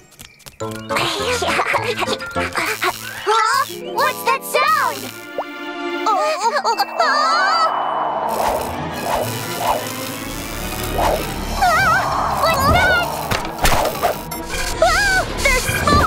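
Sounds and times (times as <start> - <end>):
electrical crackle with snaps: 0.0 - 5.5, 8.3 - 14.8
background music: 0.6 - 16.0.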